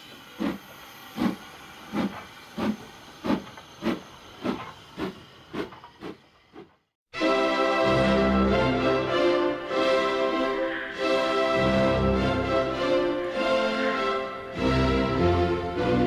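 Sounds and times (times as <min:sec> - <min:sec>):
steam locomotive chuffing: 0:00.0 - 0:06.7
music: 0:07.1 - 0:16.0.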